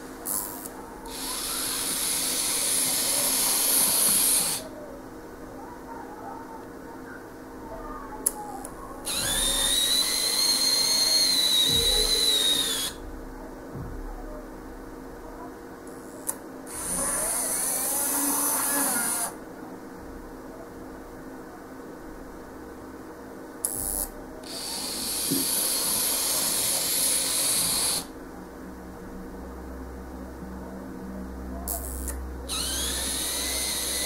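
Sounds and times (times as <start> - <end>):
model locomotive motor whine: 0.3 - 4.7, 9.1 - 13.0, 16.7 - 19.4, 24.5 - 28.1, 31.7 - 34.0
model railcar motor whirring: 32.5 - 34.0.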